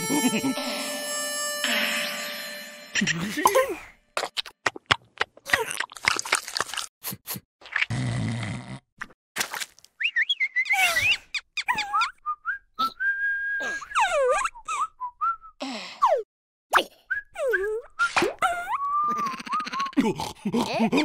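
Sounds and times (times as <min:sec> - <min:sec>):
cartoon-style whistling: 0:10.0 - 0:15.5, 0:17.0 - 0:20.0.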